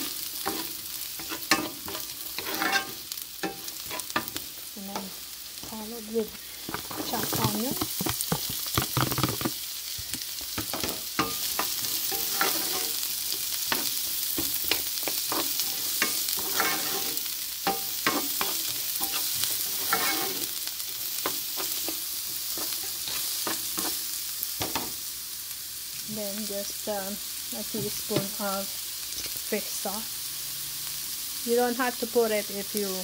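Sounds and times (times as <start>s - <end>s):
food sizzling in hot oil: 0.0s - 33.0s
wooden spatula scraping a pan: 0.4s - 5.1s, 6.6s - 9.6s, 10.7s - 13.1s, 13.7s - 20.6s.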